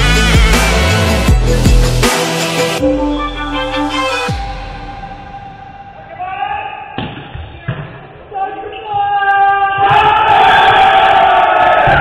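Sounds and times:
players shouting: 0:08.2 - 0:12.0.

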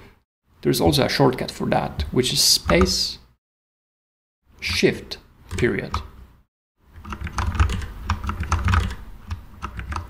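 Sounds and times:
computer keyboard typing: 0:07.0 - 0:10.0.

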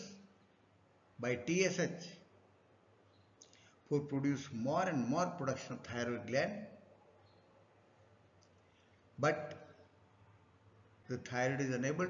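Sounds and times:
room hiss: 0:00.0 - 0:12.0
man lecturing: 0:01.2 - 0:02.3, 0:03.9 - 0:06.8, 0:09.2 - 0:09.6, 0:11.1 - 0:12.0.

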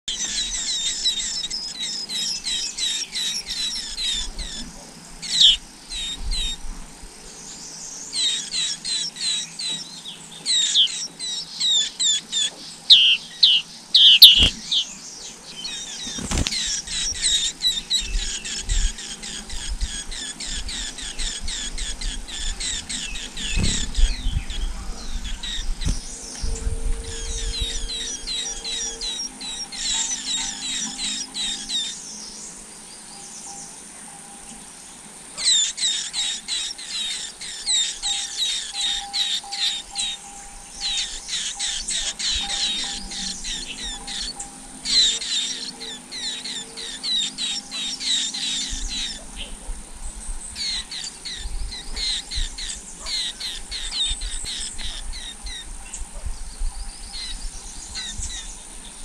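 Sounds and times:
nestlings chirping: 0:00.0 - 0:06.7, 0:07.4 - 0:58.8.

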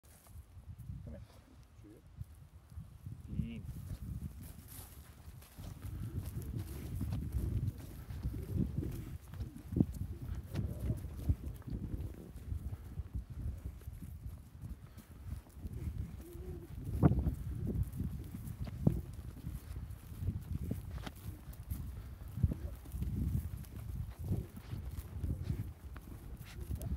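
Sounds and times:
footsteps on loose soil: 0:02.2 - 0:26.9.

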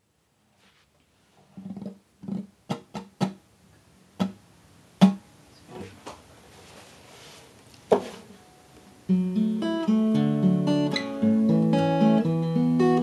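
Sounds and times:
acoustic guitar plucks and strums: 0:01.6 - 0:03.4, 0:04.2 - 0:04.4, 0:05.0 - 0:05.2, 0:08.2 - 0:13.0.

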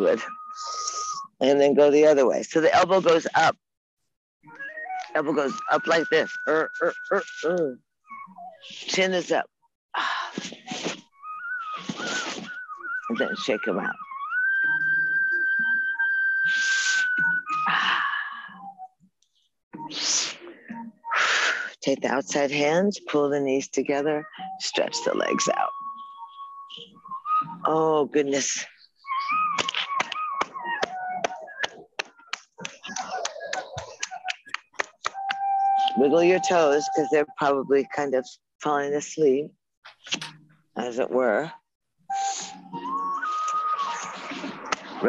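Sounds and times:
high whistle-like tone: 0:00.0 - 0:01.4, 0:04.6 - 0:08.8, 0:10.7 - 0:18.9, 0:35.0 - 0:37.5, 0:42.1 - 0:45.0.

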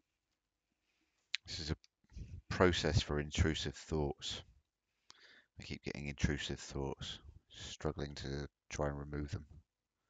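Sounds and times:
man's voice: 0:01.4 - 0:04.4, 0:05.6 - 0:09.4.

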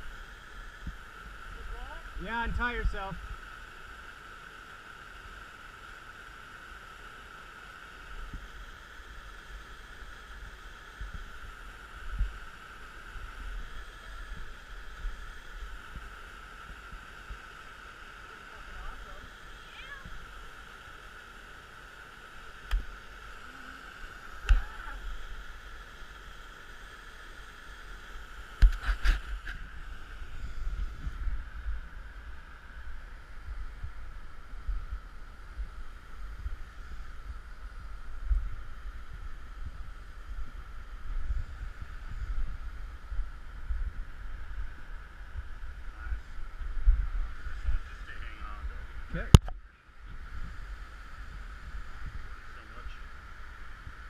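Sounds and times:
water rushing: 0:00.0 - 0:49.4
low rumbling wind: 0:28.4 - 0:54.0.

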